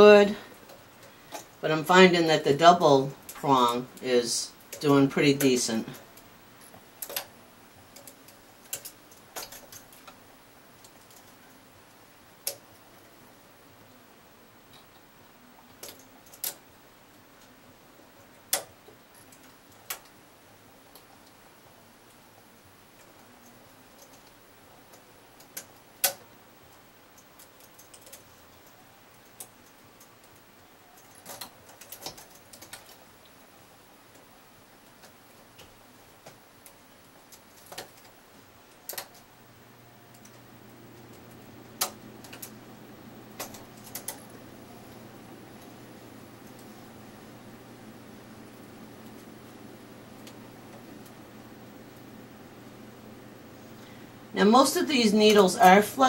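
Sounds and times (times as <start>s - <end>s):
faint low hum: 0.0s - 56.0s.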